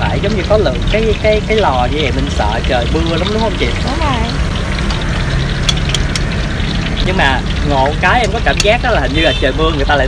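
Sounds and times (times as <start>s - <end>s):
low engine rumble: 0.0s - 10.0s
sharp clicks: 4.3s - 8.8s.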